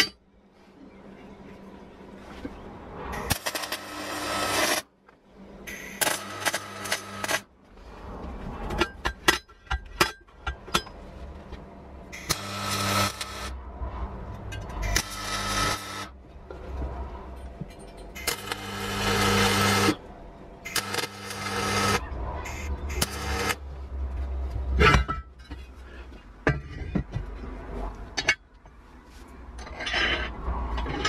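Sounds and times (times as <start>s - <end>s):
welder crackling and hissing: 12.2s - 13.5s, 18.2s - 20.0s, 20.7s - 23.6s.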